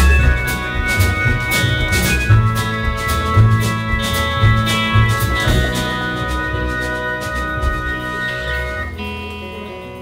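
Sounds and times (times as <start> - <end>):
acoustic guitar strumming: 0.0 - 10.0
drums: 0.0 - 10.0
live band playing: 0.0 - 10.0.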